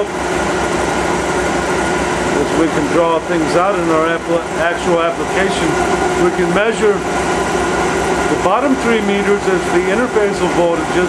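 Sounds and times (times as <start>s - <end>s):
machine running with low pulsing hiss: 0.0s - 11.0s.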